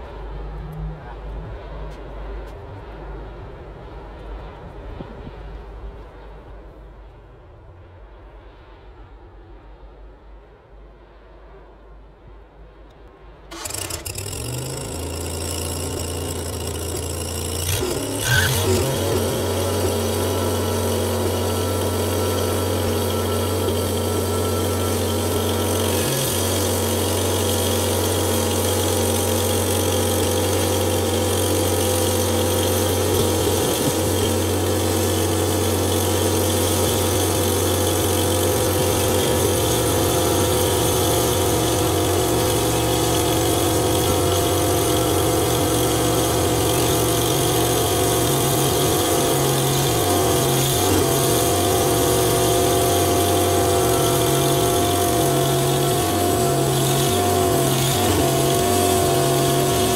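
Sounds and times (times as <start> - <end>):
bandsaw mill sawing a log: 13.5 - 59.9.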